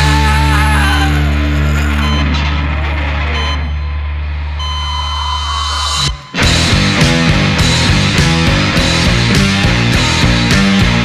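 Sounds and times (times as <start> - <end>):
distorted guitar chord ringing: 5.3 - 11.0.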